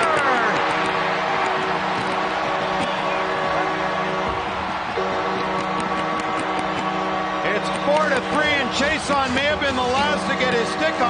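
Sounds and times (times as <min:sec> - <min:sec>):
crowd cheering: 0:00.0 - 0:11.0
goal horn chord: 0:00.2 - 0:11.0.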